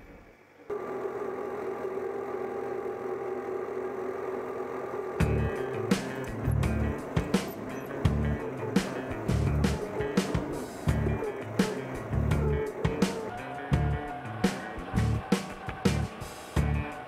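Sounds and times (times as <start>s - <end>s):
tractor diesel engine running: 0.7s - 17.0s
background music with bass and beat: 5.2s - 17.0s.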